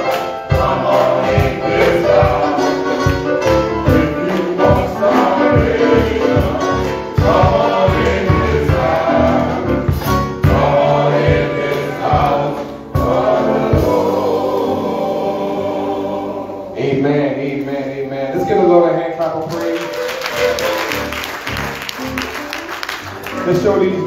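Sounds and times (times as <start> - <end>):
drums: 0.0 - 15.1
men's choir singing: 0.0 - 17.9
keyboard: 0.0 - 24.0.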